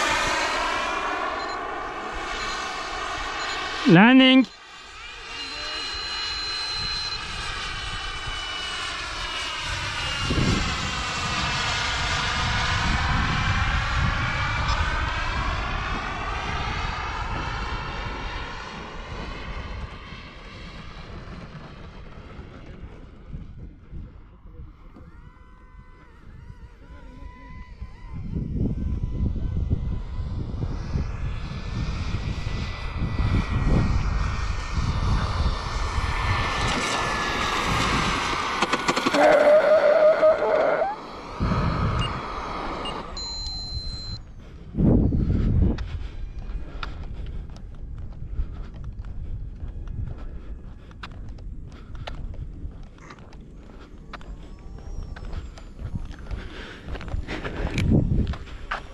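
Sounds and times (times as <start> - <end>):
model jet turbine whining: 0.0 - 23.6, 24.6 - 45.2
wind rumbling on microphone: 0.0 - 58.9.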